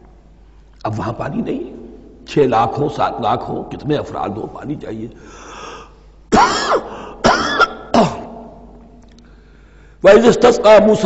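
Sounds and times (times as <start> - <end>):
breath in: 5.2 - 6.2, 6.9 - 7.2, 9.2 - 10.0
man coughing: 6.3 - 8.4.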